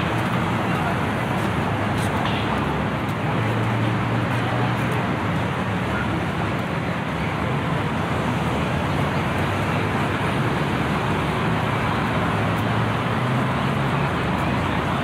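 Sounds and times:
distant road traffic: 0.0 - 15.0.

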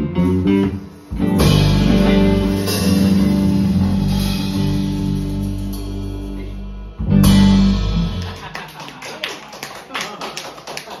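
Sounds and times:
hand claps: 8.1 - 11.0.

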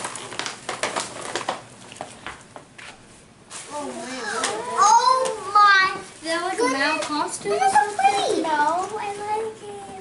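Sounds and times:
gift wrapping rustling and crinkling: 0.0 - 5.2
child's voice: 3.7 - 10.0.

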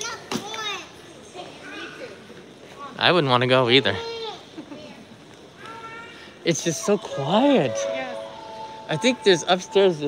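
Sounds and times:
young child calling out: 5.6 - 6.4.

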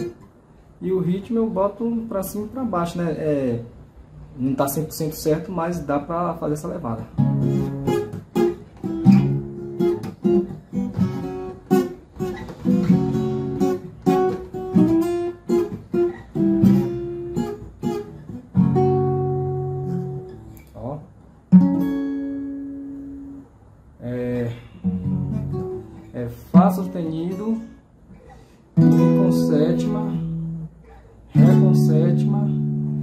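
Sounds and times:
acoustic guitar strumming: 7.1 - 20.6, 21.4 - 23.6, 24.7 - 33.0.

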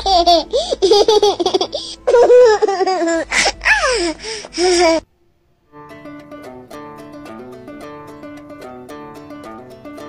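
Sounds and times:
high-pitched laughter: 0.0 - 5.0.

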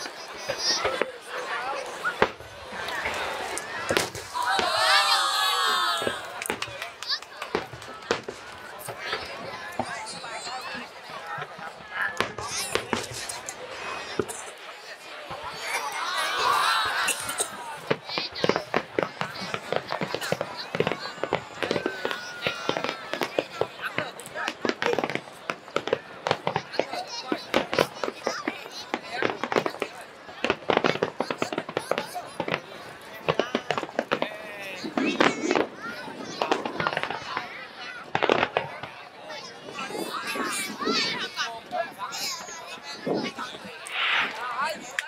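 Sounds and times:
crowd cheering and shouting: 0.0 - 29.8, 32.2 - 45.0
onlookers' voices: 0.0 - 45.0
fireworks bangs: 1.8 - 14.6, 16.4 - 45.0.

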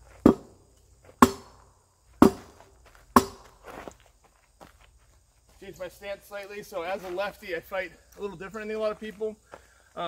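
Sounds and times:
sword striking rubber tires: 0.2 - 0.6, 1.2 - 2.6, 3.2 - 3.6.

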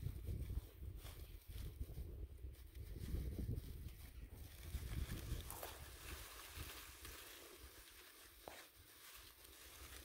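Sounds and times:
dry leaves rustling and crackling: 0.0 - 10.0.

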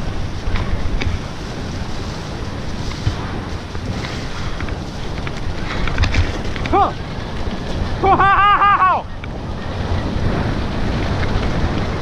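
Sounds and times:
wind buffeting microphone: 0.0 - 12.0
faint gravel clicks: 0.4 - 8.0
tyres crunching over gravel: 0.4 - 8.1.

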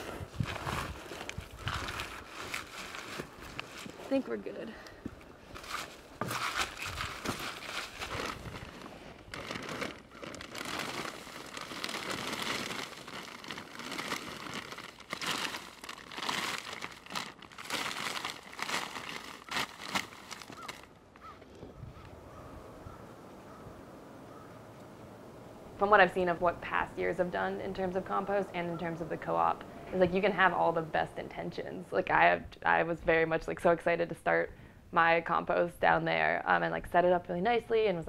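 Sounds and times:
plastic tarp crinkling: 0.0 - 4.4, 5.5 - 20.9.

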